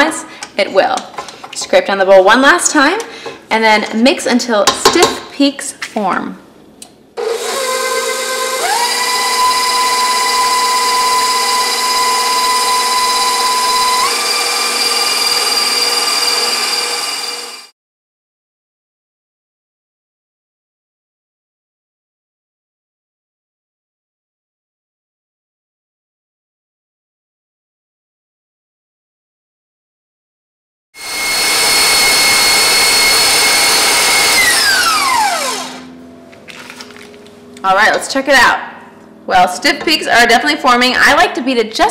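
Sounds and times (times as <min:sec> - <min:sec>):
stand mixer motor whine: 0:07.2 - 0:17.7, 0:31.0 - 0:36.0.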